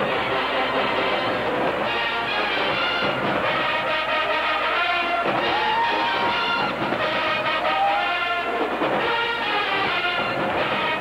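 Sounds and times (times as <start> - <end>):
marching band brass playing: 0.0 - 11.0.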